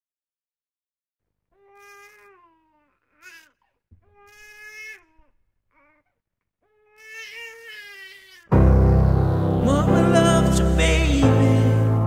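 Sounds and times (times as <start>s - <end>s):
baby crying: 1.5s - 8.5s.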